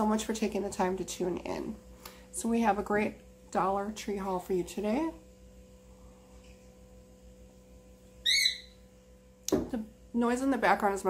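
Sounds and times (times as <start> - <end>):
electric fan humming: 0.0 - 11.0
short high-pitched chirp: 8.3 - 8.8.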